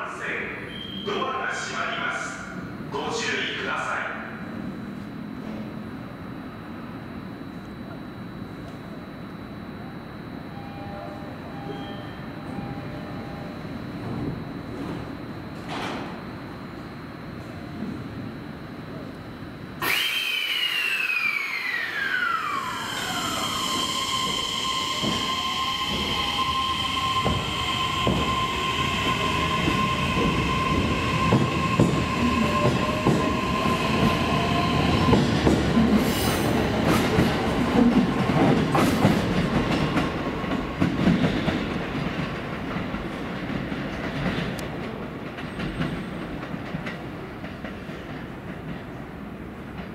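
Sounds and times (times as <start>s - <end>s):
electric train motor whine: 4.5s - 41.3s.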